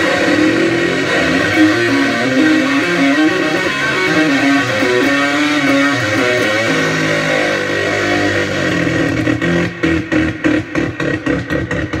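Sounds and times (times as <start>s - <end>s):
distorted electric bass solo: 0.0s - 12.0s.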